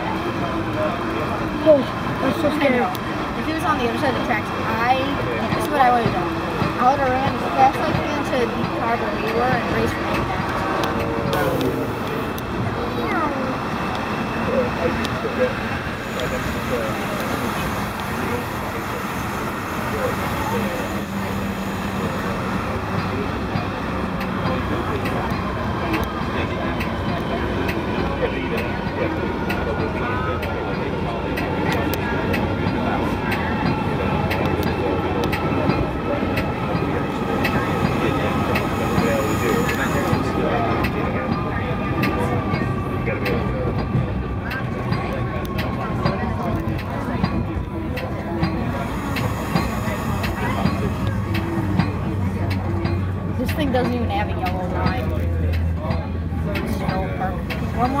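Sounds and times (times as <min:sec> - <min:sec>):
people talking: 0:00.0 - 0:58.0
train rumbling on track: 0:00.0 - 0:58.0.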